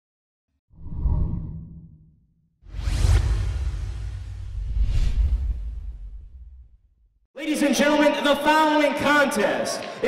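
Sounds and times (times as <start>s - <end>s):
deep whoosh with low rumble: 2.7s - 7.0s.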